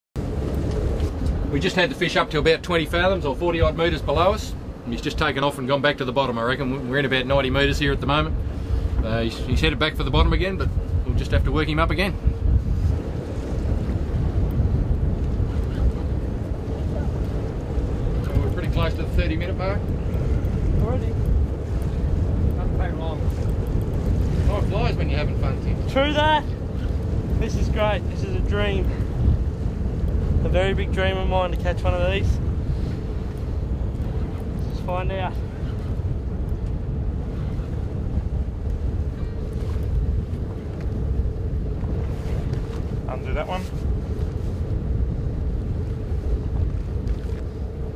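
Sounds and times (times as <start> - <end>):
boat noise rumble: 0.2 - 47.9
constant hum: 0.2 - 47.9
wind buffeting microphone: 0.2 - 47.9.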